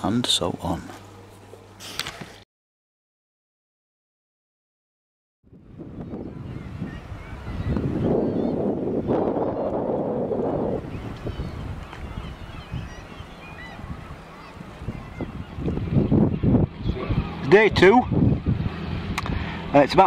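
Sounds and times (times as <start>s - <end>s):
gulls calling: 5.6s - 20.0s.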